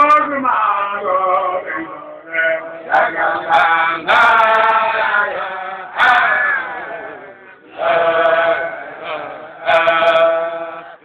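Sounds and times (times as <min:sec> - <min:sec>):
man singing a chant: 0:00.0 - 0:11.0.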